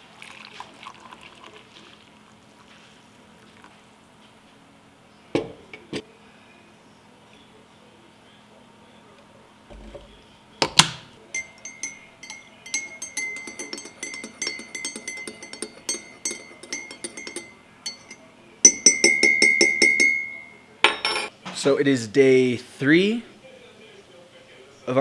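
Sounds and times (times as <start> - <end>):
teaspoon clinking in ceramic mug: 11.3 - 21.3.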